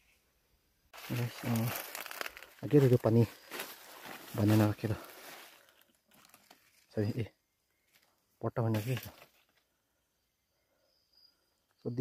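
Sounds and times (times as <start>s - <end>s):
dry plant matter rustling: 1.0s - 7.0s
soft crackles: 1.0s - 7.0s.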